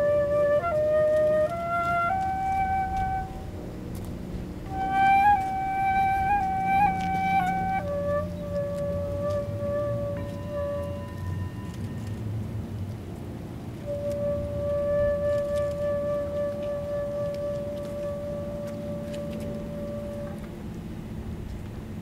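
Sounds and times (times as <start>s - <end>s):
flute long notes: 0.0s - 21.4s.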